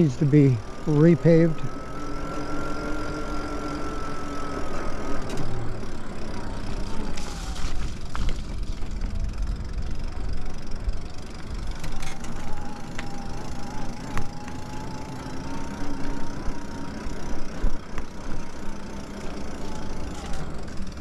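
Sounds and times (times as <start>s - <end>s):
electric bike motor whining: 0.0s - 21.0s.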